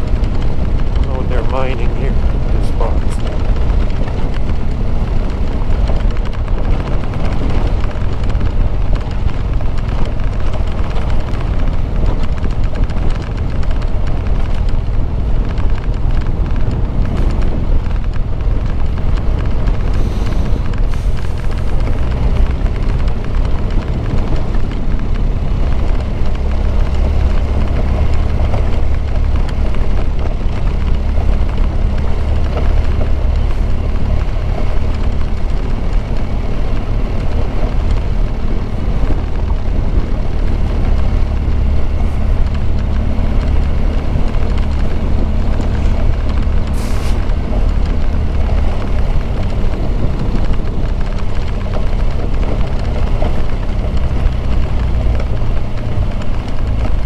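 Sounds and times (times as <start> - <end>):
wind rumble on microphone: 0.0 - 57.0.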